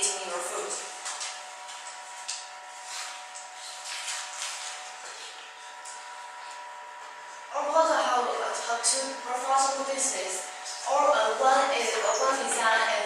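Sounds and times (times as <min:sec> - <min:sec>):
faint hum: 0:00.0 - 0:13.0.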